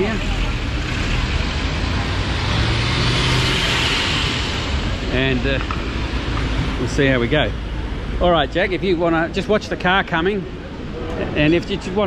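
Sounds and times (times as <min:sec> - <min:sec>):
street traffic noise: 0:00.0 - 0:12.0
car passing at low speed: 0:00.6 - 0:09.1.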